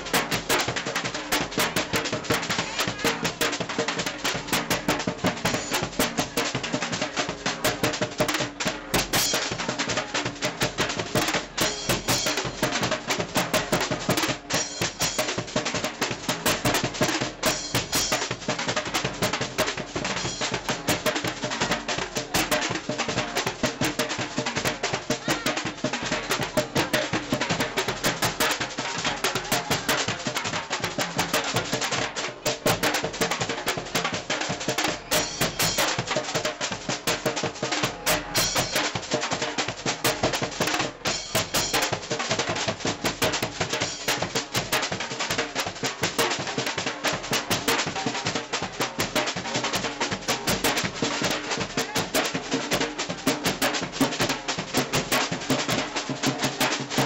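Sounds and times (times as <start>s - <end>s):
bass drum beats: 0.0s - 34.3s, 36.9s - 39.1s.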